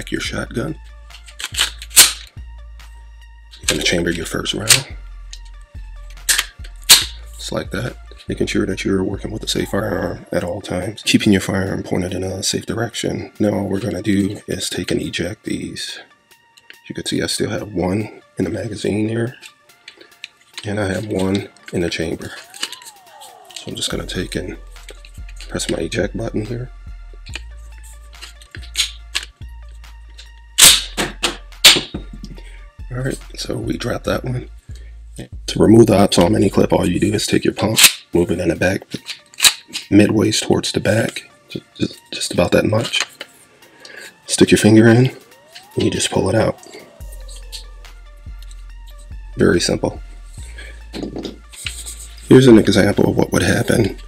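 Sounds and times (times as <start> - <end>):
faint background music: 0.0 - 54.0
shotgun pump metallic clacks: 1.1 - 2.3, 38.9 - 40.0.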